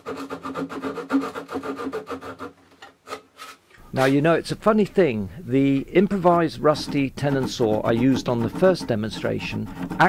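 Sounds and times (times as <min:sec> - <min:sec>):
fine-toothed saw cutting wood: 0:00.0 - 0:03.6, 0:06.0 - 0:10.0.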